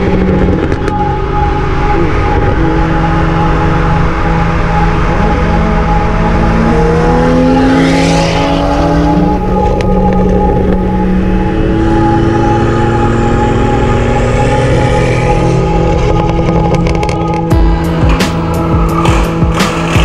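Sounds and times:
background music: 0.0 - 20.0
car engine accelerating: 0.0 - 20.0.

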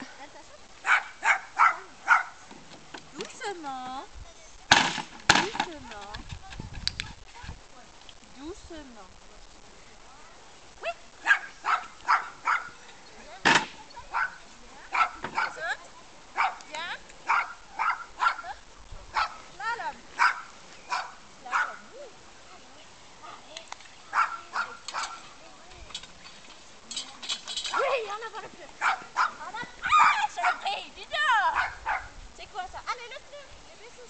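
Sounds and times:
dog barking: 0.8 - 2.4, 11.2 - 12.8, 14.1 - 15.7, 16.4 - 19.4, 20.2 - 21.8, 24.1 - 25.2, 28.8 - 30.7, 31.5 - 32.2.

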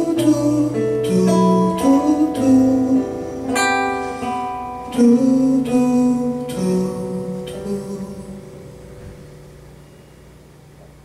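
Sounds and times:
classical guitar notes ringing: 0.0 - 10.5.

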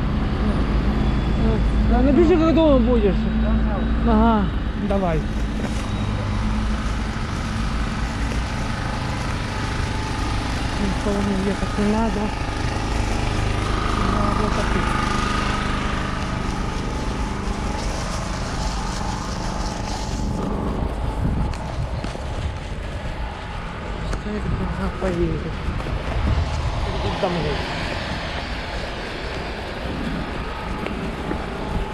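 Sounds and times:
traffic on wet road: 4.8 - 31.9.

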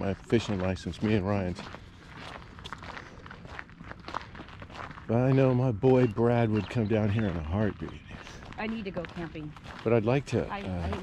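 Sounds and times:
footsteps on paved road: 0.0 - 11.0
outdoor background noise: 0.0 - 11.0.

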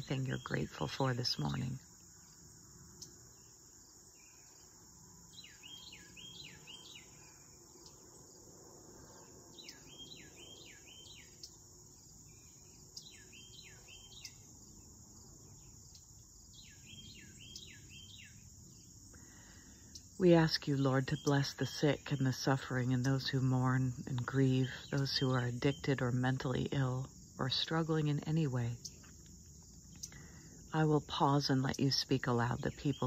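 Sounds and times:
insect chorus chirring: 0.0 - 33.0.

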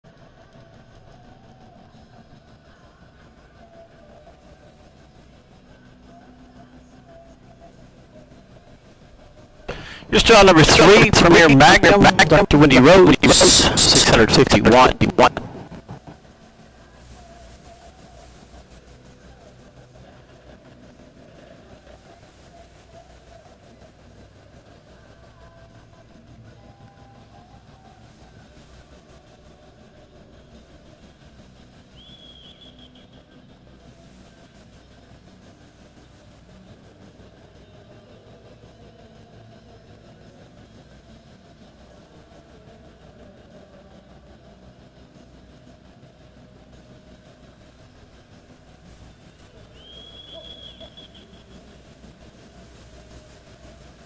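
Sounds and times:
indoor arena low rumble: 9.7 - 16.6.

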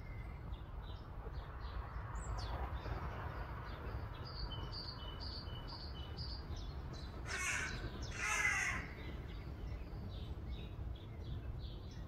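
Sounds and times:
harsh caw-like bird calls: 7.2 - 9.2.

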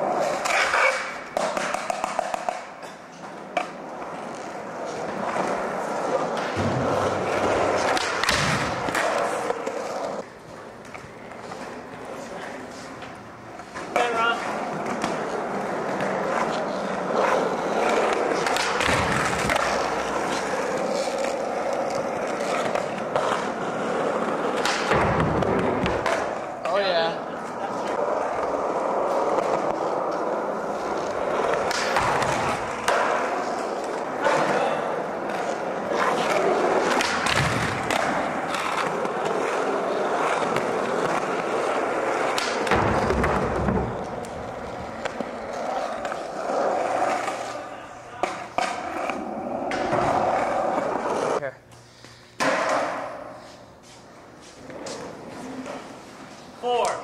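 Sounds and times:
skateboard clacks: 0.0 - 12.1, 13.0 - 47.6, 52.4 - 53.2
skateboard wheels rolling on concrete: 0.0 - 51.5, 52.4 - 57.0
skateboard landing thuds: 6.5 - 9.1, 24.6 - 26.3, 36.9 - 38.3, 42.4 - 44.1.

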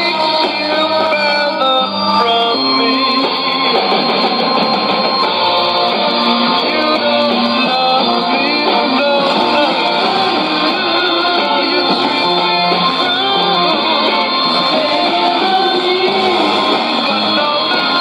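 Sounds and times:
muffled guitar pop music on radio: 0.0 - 18.0.

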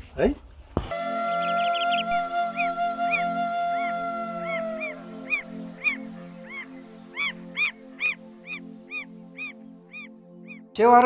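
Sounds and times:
low pulsing drone: 0.9 - 10.6
soft background music: 0.9 - 11.0
animal calls: 1.3 - 10.1.

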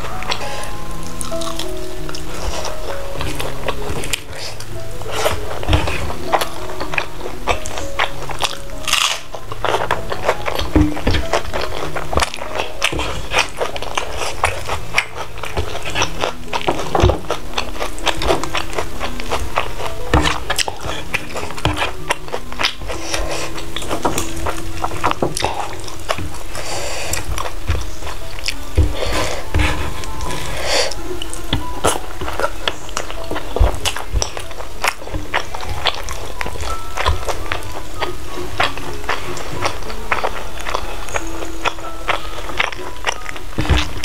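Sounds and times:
background music: 0.0 - 44.0
chewing and crunching: 0.0 - 44.0.

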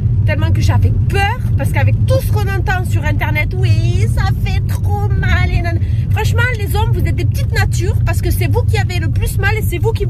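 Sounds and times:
car rumble inside cabin: 0.0 - 10.0
woman talking: 0.3 - 10.0.

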